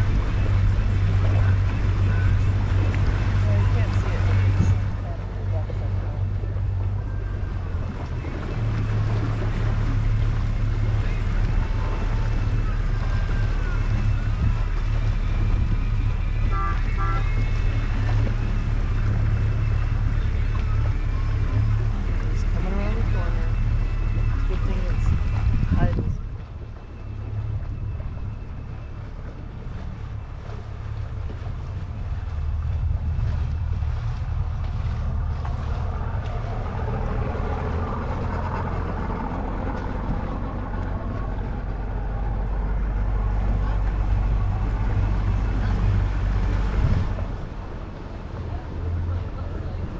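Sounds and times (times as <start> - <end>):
motorboat engine drone: 0.0 - 49.9
wind noise on microphone: 0.0 - 49.9.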